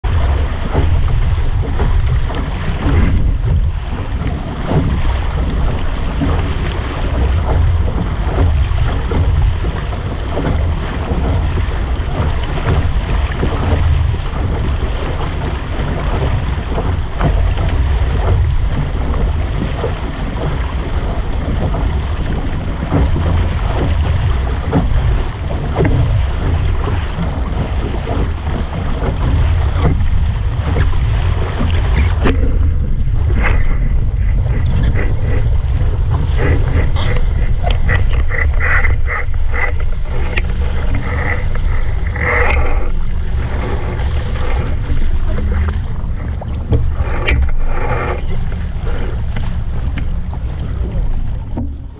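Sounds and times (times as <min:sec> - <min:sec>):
water rushing and splashing: 0:00.0 - 0:51.9
wind buffeting microphone: 0:00.0 - 0:51.9.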